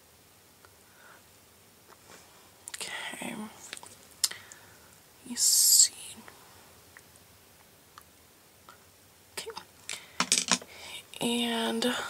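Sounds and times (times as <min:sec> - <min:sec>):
person whispering: 0:02.8 - 0:03.8, 0:05.2 - 0:06.4, 0:09.4 - 0:09.7.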